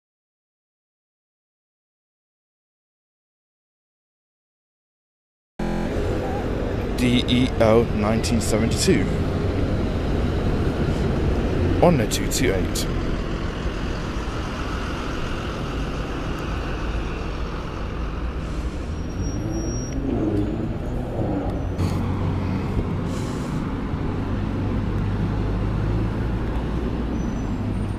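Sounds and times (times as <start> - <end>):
bus diesel engines running: 5.6 - 27.9
vehicle pulling away: 5.6 - 27.9.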